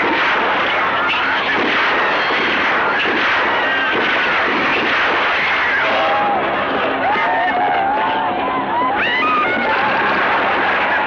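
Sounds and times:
sharp gunshots: 0.0 - 7.0, 9.6 - 11.0
continuous gunfire: 0.0 - 8.0, 9.0 - 11.0
people screaming and shouting: 0.0 - 11.0.

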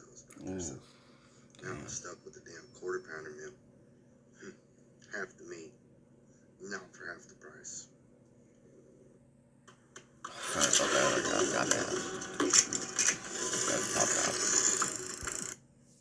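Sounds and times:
pulley contraption clattering: 10.3 - 15.6.

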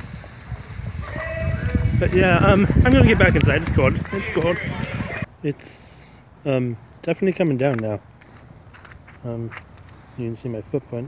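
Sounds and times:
wind rumble on microphone: 0.0 - 5.3.

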